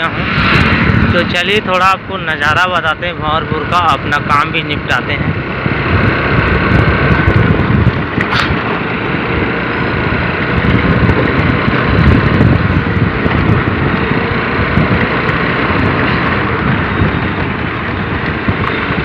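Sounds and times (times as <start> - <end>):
wind rush on microphone: 0.0 - 19.0
motor scooter running: 2.9 - 19.0.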